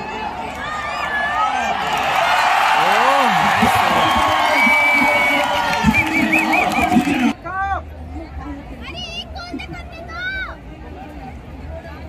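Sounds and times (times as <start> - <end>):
crowd cheering and shouting: 0.0 - 7.8.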